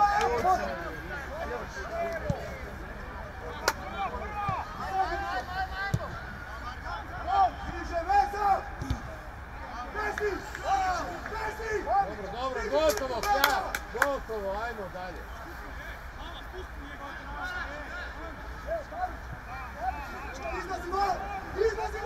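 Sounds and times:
footballers shouting: 0.0 - 22.0.

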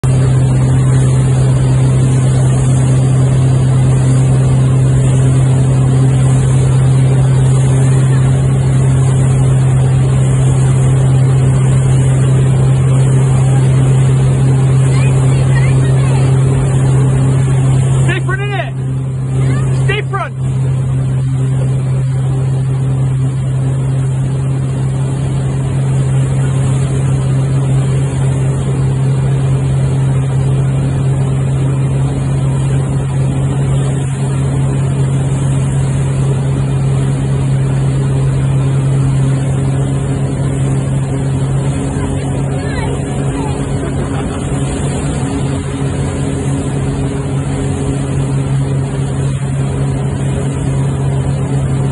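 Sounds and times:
boat engine humming: 0.0 - 51.9
churning wake water: 0.0 - 51.9.

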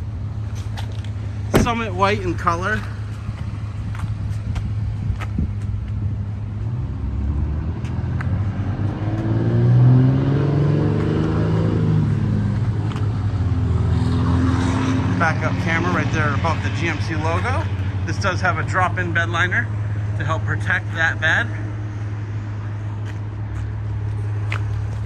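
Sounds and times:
car engine idling: 0.0 - 6.7.

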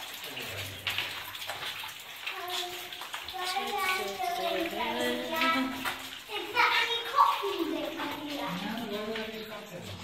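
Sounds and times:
water drips: 0.0 - 10.0
water running and trickling: 0.0 - 10.0
child's voice: 2.3 - 8.8.

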